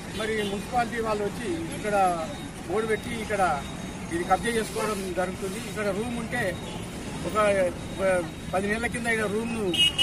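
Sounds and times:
man speaking: 0.1s - 9.8s.

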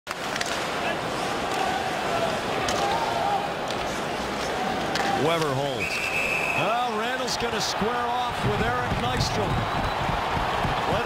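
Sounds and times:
hockey sticks clacking on puck: 0.1s - 1.8s, 2.5s - 5.6s.

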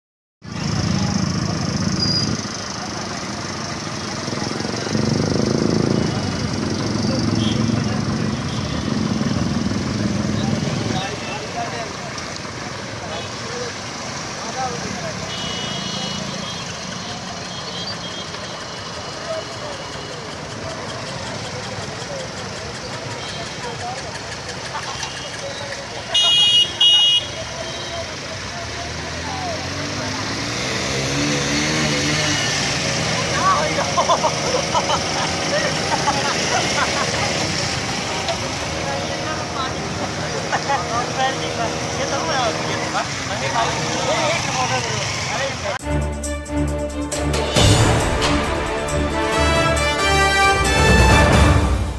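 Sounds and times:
car engines: 0.4s - 51.9s
motorcycle engines: 0.4s - 51.9s
people's voices: 0.5s - 46.0s
vehicle horn beeps: 7.2s - 9.1s, 15.2s - 20.3s, 23.1s - 23.7s, 24.8s - 28.2s.

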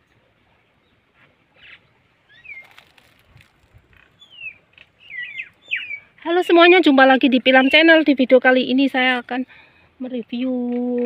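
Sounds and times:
small bird chirping: 1.6s - 8.2s.

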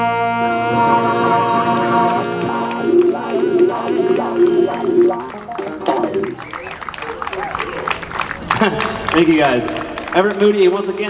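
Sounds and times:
electric bass: 0.0s - 6.4s
saxophone playing: 0.0s - 8.2s
crowd voices: 0.0s - 11.0s.

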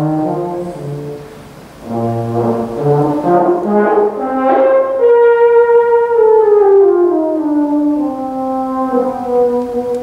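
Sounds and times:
solo euphonium playing: 0.0s - 10.0s.

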